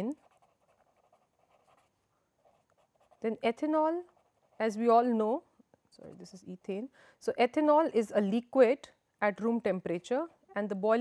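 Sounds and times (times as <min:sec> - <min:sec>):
marker scratching on paper: 0:00.0 - 0:04.9.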